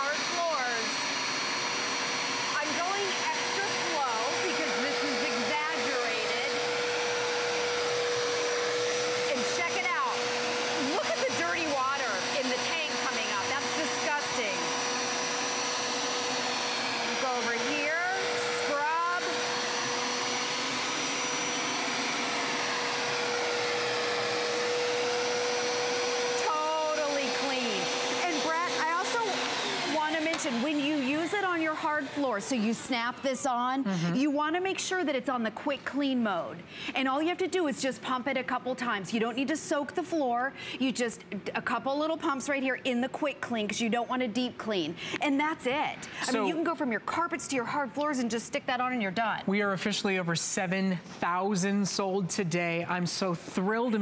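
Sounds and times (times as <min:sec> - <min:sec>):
floor cleaner motor whine: 0:00.0 - 0:33.6.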